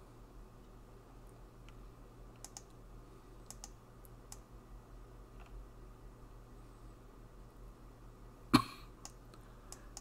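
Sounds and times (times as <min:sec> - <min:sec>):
low steady hum: 0:00.0 - 0:10.0
faint clicks: 0:00.6 - 0:02.8, 0:03.4 - 0:04.5, 0:09.0 - 0:10.0
person coughing: 0:08.5 - 0:09.0.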